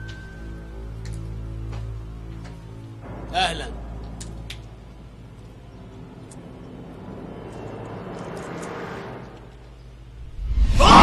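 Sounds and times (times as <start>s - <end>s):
low steady tones: 0.0s - 10.8s
soft rushing noise: 6.4s - 11.0s.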